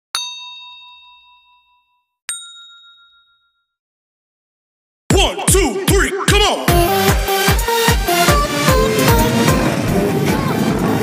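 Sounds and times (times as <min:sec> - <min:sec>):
bell-like dings: 0:00.2 - 0:03.8.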